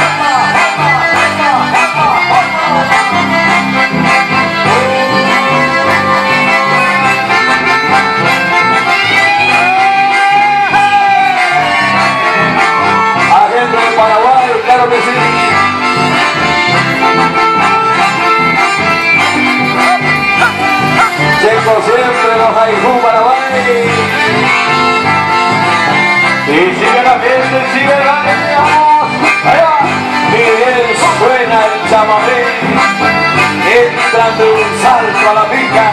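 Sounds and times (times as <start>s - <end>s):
accordions: 0.0s - 35.9s
guitars and bass rhythm: 0.0s - 35.9s.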